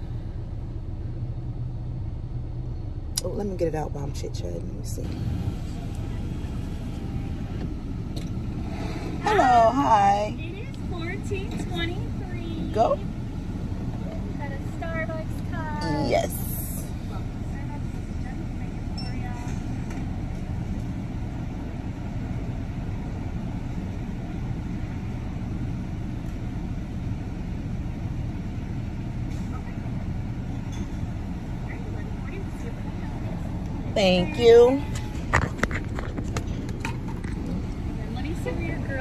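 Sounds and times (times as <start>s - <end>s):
car engine idling: 0.0s - 39.0s
person's voice: 15.6s - 16.9s.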